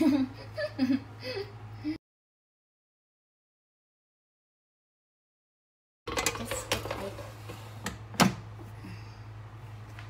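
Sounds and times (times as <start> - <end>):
air fryer low hum: 6.1 - 10.0
air fryer basket clicks and knocks: 7.8 - 8.5.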